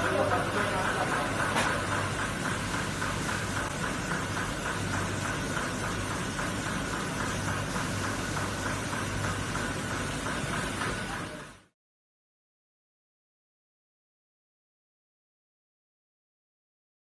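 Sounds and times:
rhythmic machine clatter: 0.0s - 11.7s
carton gluing machine running: 0.0s - 11.8s.

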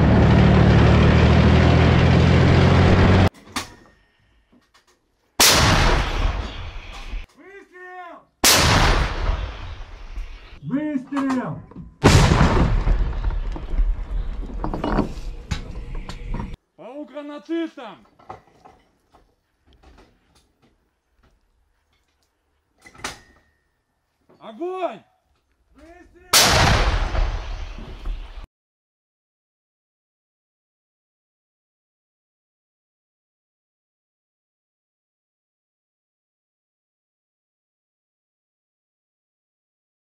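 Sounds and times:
gun firing blast: 5.4s - 6.9s, 8.4s - 10.2s, 12.0s - 13.4s, 26.3s - 28.0s.

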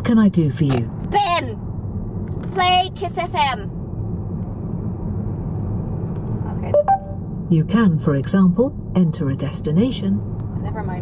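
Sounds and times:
road and engine rumble in car: 0.0s - 11.0s.

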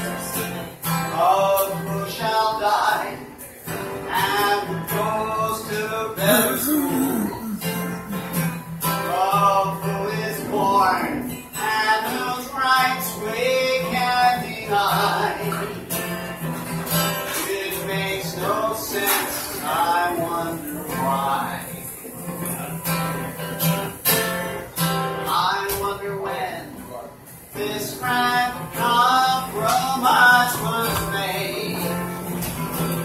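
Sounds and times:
man singing: 0.0s - 3.4s, 4.0s - 15.8s, 17.3s - 21.8s, 25.2s - 26.8s, 27.5s - 32.4s
acoustic guitar strumming: 0.0s - 33.0s.

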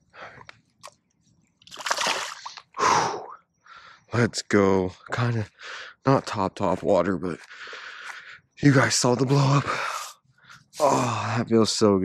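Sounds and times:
fish splashing in water: 1.6s - 2.6s.

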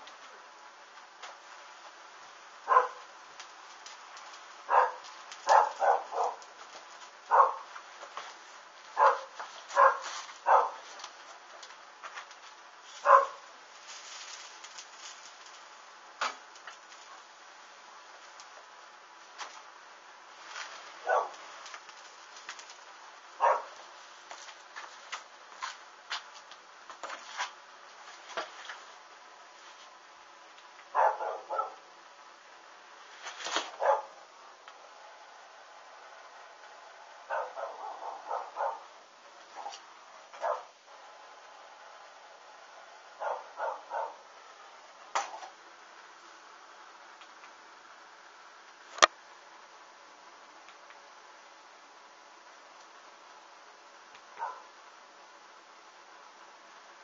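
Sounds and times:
faint steady background: 0.0s - 57.0s
dog barking: 2.6s - 3.1s, 4.7s - 6.4s, 7.3s - 7.7s, 9.0s - 10.9s, 13.0s - 13.5s, 21.0s - 21.4s, 23.4s - 23.8s, 30.9s - 31.8s, 33.8s - 34.2s, 37.3s - 38.9s, 40.4s - 40.7s, 43.2s - 44.3s, 54.4s - 54.7s.

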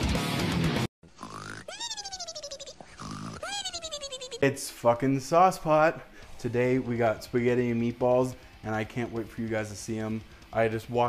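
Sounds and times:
comic snoring with whistle: 1.1s - 1.9s, 2.7s - 3.7s.

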